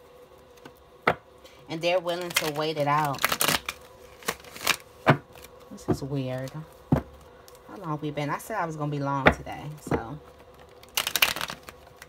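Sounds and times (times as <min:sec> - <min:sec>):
cards being riffle-shuffled: 0:02.1 - 0:05.7, 0:10.3 - 0:12.0.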